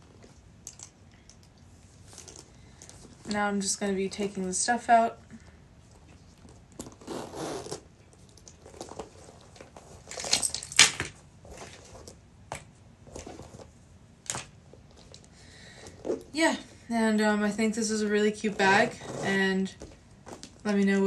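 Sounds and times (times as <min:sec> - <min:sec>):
bag rustling: 0:18.3 - 0:20.6.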